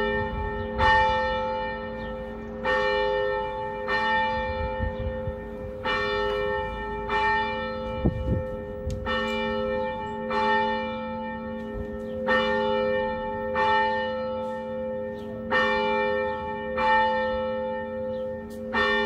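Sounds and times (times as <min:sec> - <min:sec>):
church bell tolling: 0:00.0 - 0:19.0.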